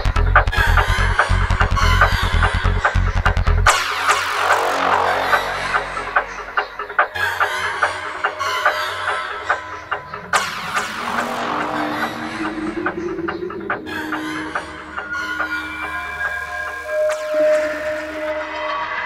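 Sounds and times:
psytrance music: 0:00.0 - 0:19.0
rising synth line: 0:04.0 - 0:07.0, 0:09.8 - 0:16.8.

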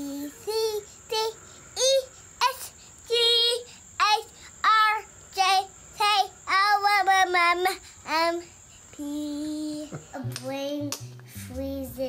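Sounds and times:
young child singing: 0:00.0 - 0:12.0.

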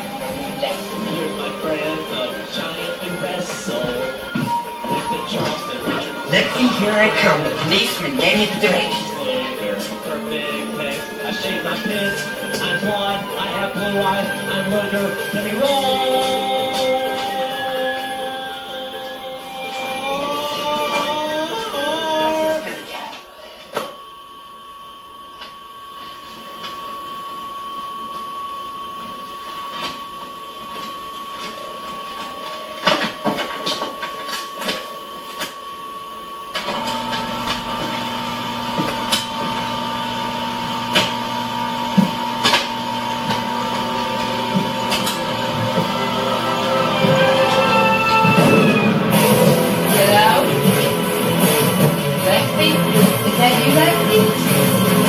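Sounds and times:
music: 0:00.0 - 0:23.2, 0:38.7 - 0:55.0
photocopier whine and hum: 0:00.0 - 0:55.0.

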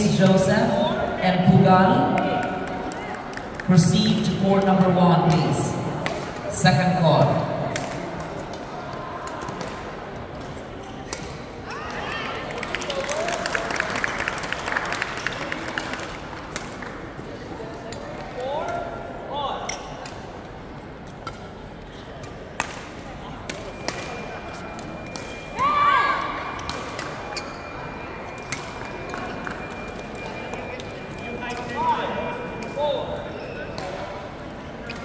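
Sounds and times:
murmur of voices in a hall: 0:00.0 - 0:35.0
shoe squeaks: 0:27.2 - 0:29.0.

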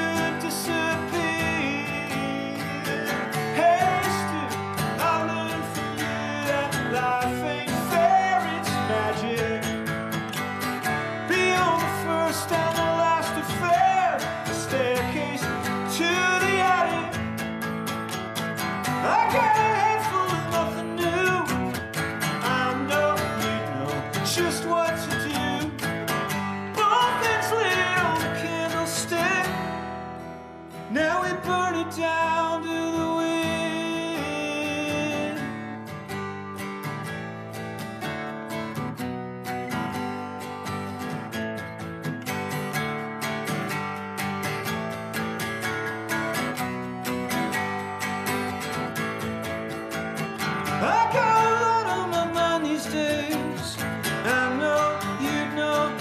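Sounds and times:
man singing folk song: 0:00.0 - 0:38.8, 0:39.4 - 0:56.0
acoustic guitar: 0:00.0 - 0:56.0.

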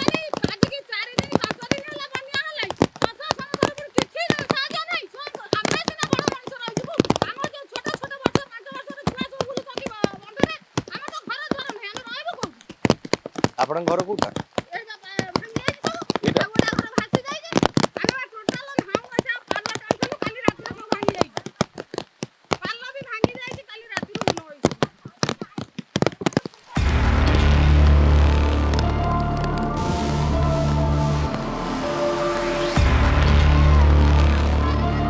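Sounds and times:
person talking: 0:00.0 - 0:12.6, 0:13.6 - 0:21.5
background music with heavy bass: 0:26.7 - 0:35.0.

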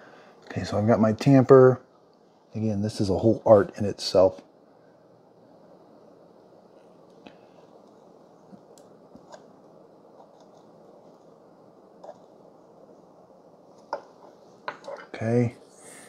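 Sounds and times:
faint hiss: 0:00.0 - 0:16.0.

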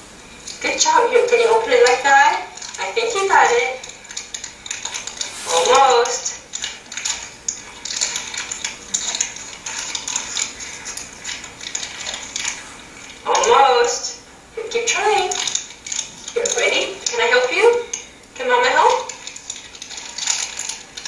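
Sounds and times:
person speaking: 0:00.6 - 0:04.0, 0:05.2 - 0:06.4, 0:13.2 - 0:15.5, 0:16.3 - 0:19.2.

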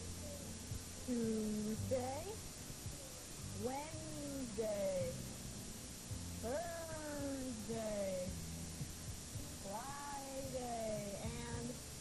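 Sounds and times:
low tape hum: 0:00.0 - 0:12.0
children's sing-song calls: 0:06.4 - 0:08.3, 0:09.6 - 0:11.8.

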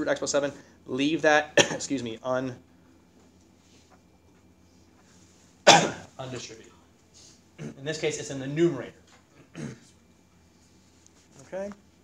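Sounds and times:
man coughing: 0:01.6 - 0:01.9, 0:05.6 - 0:06.1, 0:07.6 - 0:07.8, 0:09.4 - 0:09.9.

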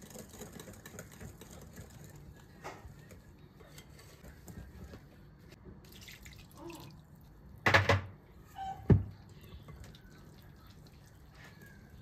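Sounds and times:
whisk stirring wet batter: 0:00.0 - 0:05.6, 0:09.2 - 0:12.0.

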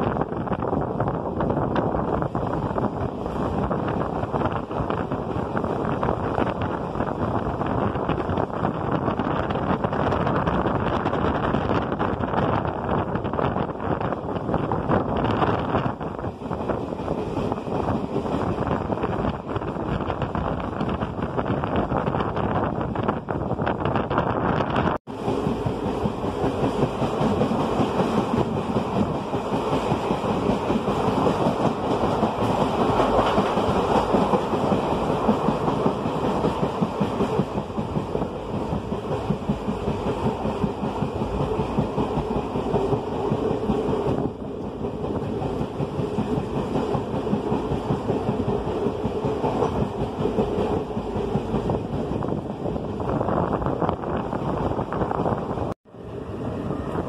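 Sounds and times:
train wheels rumbling clatter: 0:00.0 - 0:57.0.

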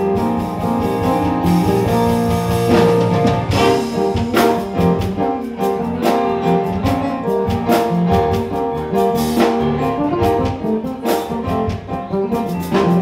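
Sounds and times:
drum kit beat: 0:00.0 - 0:13.0
electric bass line: 0:00.0 - 0:13.0
keyboard: 0:00.0 - 0:13.0.

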